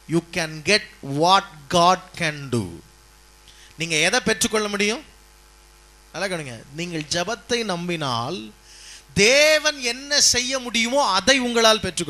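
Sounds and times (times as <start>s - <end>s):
low electrical hum: 0.0s - 12.0s
man speaking: 0.1s - 2.9s, 3.8s - 5.1s, 6.2s - 12.0s.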